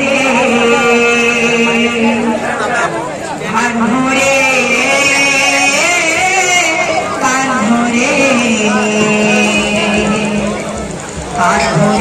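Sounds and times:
devotional singing: 0.0s - 12.0s
soft drum beats: 8.1s - 12.0s.

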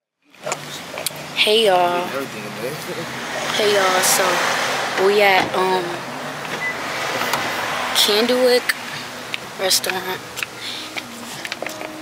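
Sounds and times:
passing traffic hiss: 0.4s - 12.0s.

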